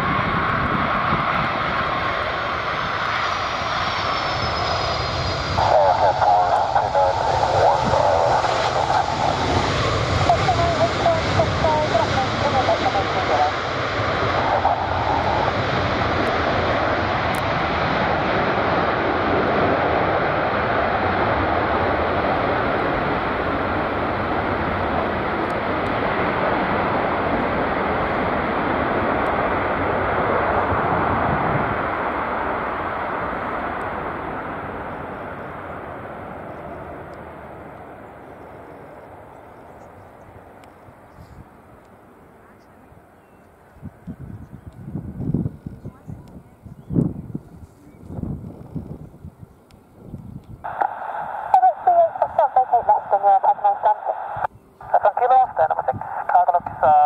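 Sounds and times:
jet engines rushing: 0:00.0 - 0:57.0.

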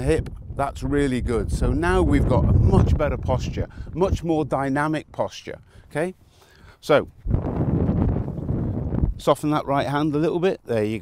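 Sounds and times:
microphone rumble: 0:00.0 - 0:04.5, 0:07.2 - 0:09.3.

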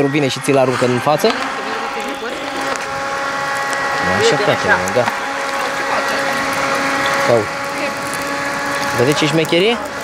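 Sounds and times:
small fan whirring: 0:00.0 - 0:10.0.

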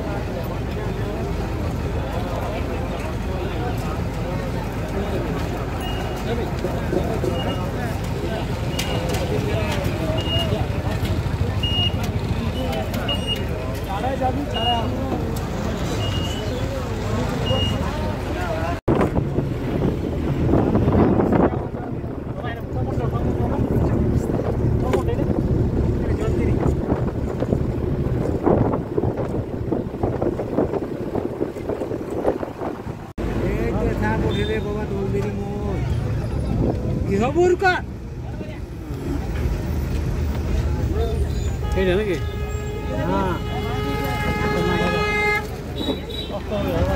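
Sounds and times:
bus engine: 0:00.0 - 0:46.9
passengers talking: 0:00.0 - 0:46.9
road noise: 0:00.0 - 0:46.9.

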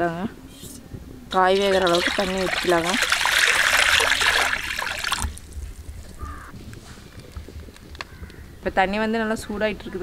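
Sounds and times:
water pouring into a wok: 0:01.4 - 0:05.4.

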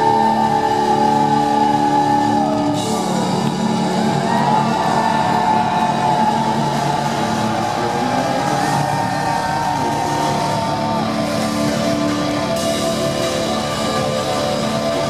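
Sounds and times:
metal band playing live: 0:00.0 - 0:15.0.

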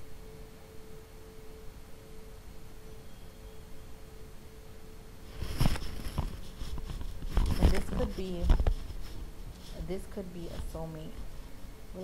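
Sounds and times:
tuning fork ringing: 0:00.0 - 0:05.2.

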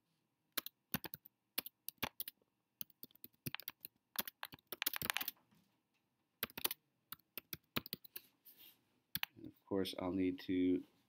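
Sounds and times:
computer keyboard typing: 0:00.6 - 0:05.4, 0:06.4 - 0:08.2, 0:09.1 - 0:09.4.

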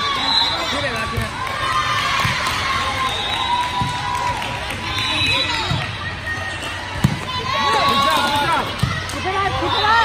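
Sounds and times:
players and spectators shouting: 0:00.0 - 0:10.0
volleyball slaps: 0:00.9 - 0:02.9, 0:03.6 - 0:04.8, 0:06.9 - 0:09.4.

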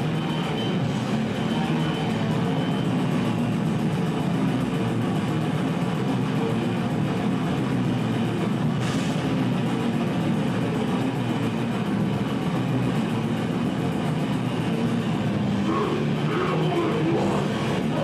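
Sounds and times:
drums: 0:00.0 - 0:18.0.

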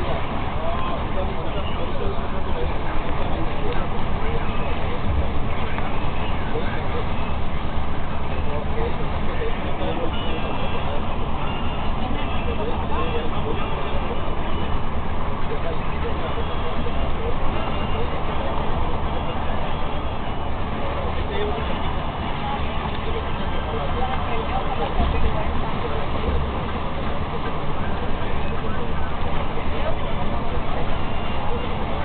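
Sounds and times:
indistinct voices: 0:00.0 - 0:32.0
vehicle engine and road noise: 0:00.0 - 0:32.0.

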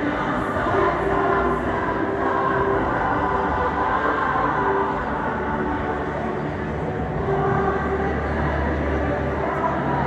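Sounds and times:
large choir singing: 0:00.0 - 0:10.0.

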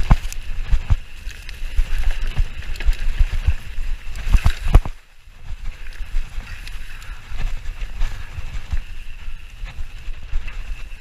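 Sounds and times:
bike knocks and rattles: 0:00.0 - 0:09.0
bike tyre and drivetrain noise: 0:00.0 - 0:11.0
wind rumbling on microphone: 0:00.0 - 0:11.0.

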